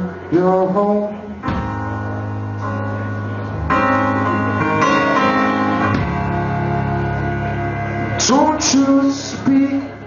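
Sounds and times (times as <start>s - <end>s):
person singing: 0.0s - 1.6s, 8.1s - 10.0s
keyboard sustained chords: 0.0s - 10.0s.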